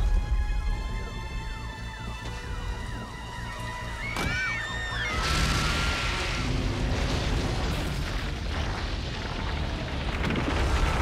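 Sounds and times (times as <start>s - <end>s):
electronic alarm wailing: 3.9s - 6.2s.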